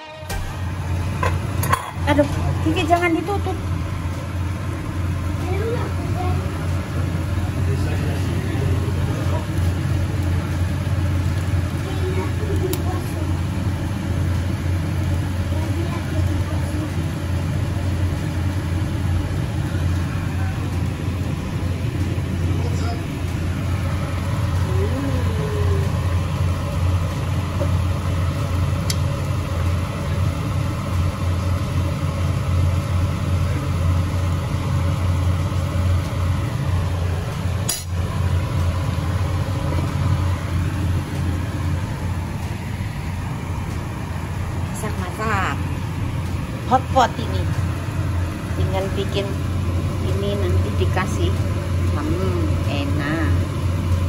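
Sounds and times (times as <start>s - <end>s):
steady low hum: 0.0s - 54.0s
faint talking: 24.6s - 26.1s.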